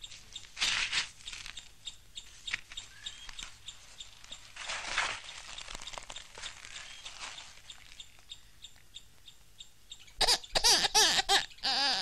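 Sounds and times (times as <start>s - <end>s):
high-pitched bursts of laughter: 10.2s - 12.0s.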